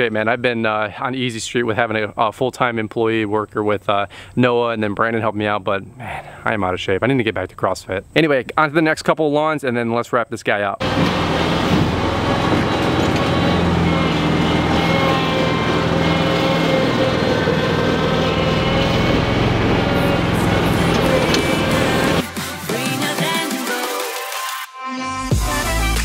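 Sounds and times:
mower engine running: 10.8s - 22.3s
background music: 19.4s - 26.0s.

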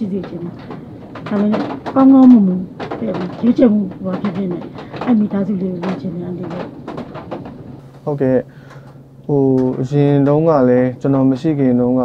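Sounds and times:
person talking: 0.0s - 0.6s, 1.2s - 6.7s.

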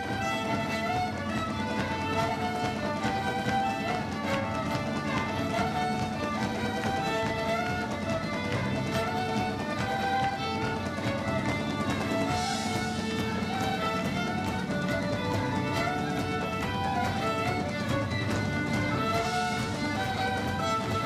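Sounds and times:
fiddle melody: 0.0s - 21.0s
frame drum: 0.0s - 21.0s.

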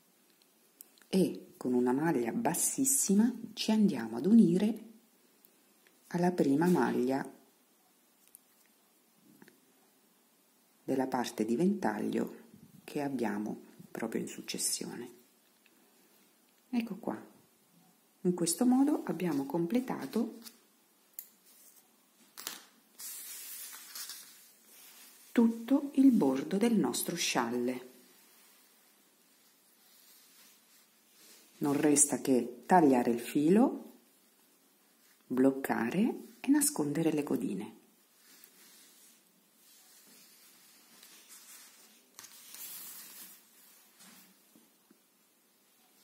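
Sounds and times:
yarn shawl rustling: 6.0s - 7.5s, 18.2s - 46.0s.

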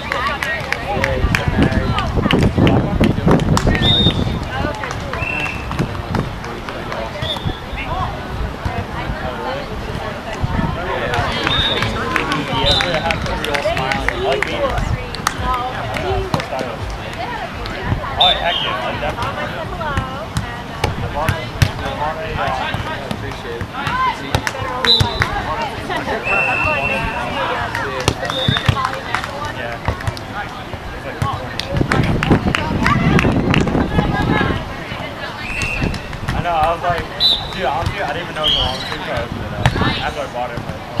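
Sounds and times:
voices calling and chattering: 0.0s - 41.0s
volleyballs being hit: 11.0s - 18.0s, 18.8s - 33.7s.

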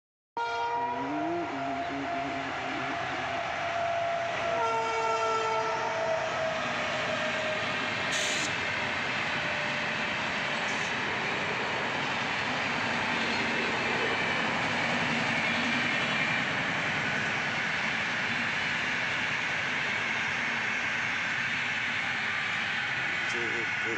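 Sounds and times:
train horn blasts: 0.4s - 7.4s
train rolling past: 0.6s - 23.9s.

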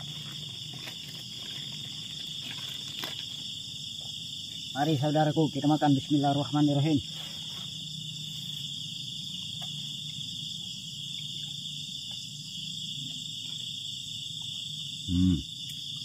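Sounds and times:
crickets trilling: 0.0s - 16.0s.

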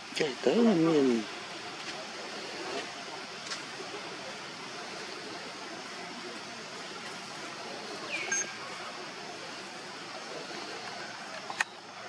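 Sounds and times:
forest background hiss: 0.0s - 12.0s.

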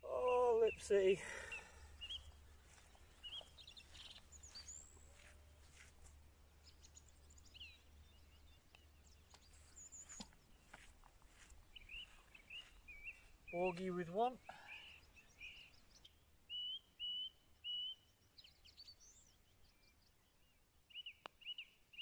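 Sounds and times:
birds chirping and whistling: 0.1s - 5.8s, 6.6s - 20.1s, 20.9s - 22.0s.

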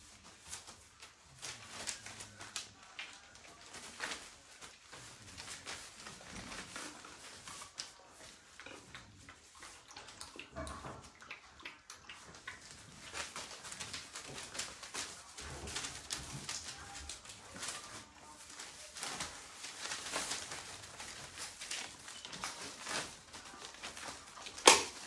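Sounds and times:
scratchy clicks and rustles: 0.0s - 25.0s
puppies making small sounds: 0.5s - 25.0s.

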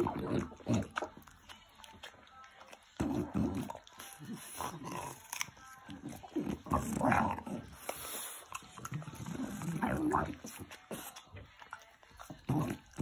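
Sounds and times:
dog chewing wetly: 0.0s - 13.0s
dog breathing noisily: 7.7s - 9.6s.

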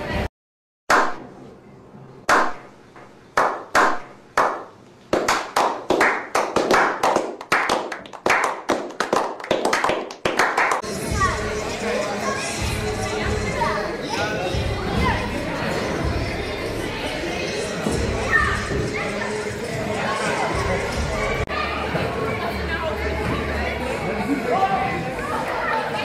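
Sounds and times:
group clapping: 2.3s - 2.6s, 3.4s - 10.9s
din of voices in large hall: 10.8s - 26.0s.

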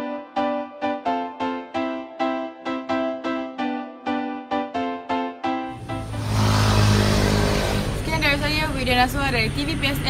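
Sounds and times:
vehicle driving past: 5.7s - 8.8s.

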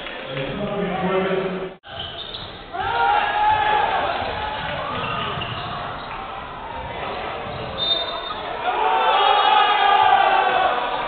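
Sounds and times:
players and crowd voices: 0.0s - 11.0s
basketball bouncing on hardwood: 4.2s - 6.0s, 6.8s - 7.8s.

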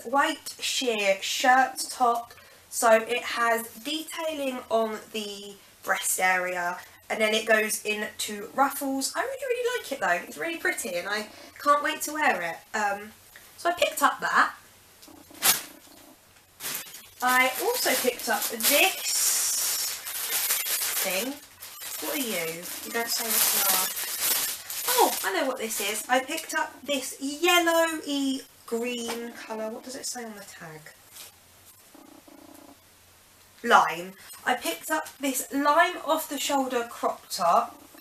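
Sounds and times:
low room hum: 0.0s - 38.0s
packaging rustling: 16.6s - 26.6s.

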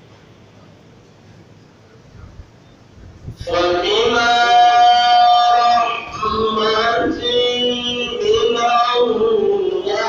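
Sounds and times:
person chanting a devotional song: 3.3s - 10.0s.

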